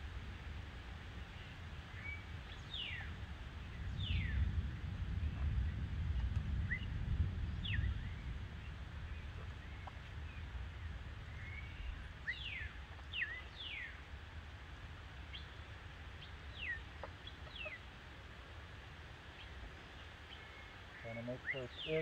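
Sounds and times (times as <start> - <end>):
low steady rumble: 0.0 - 22.0.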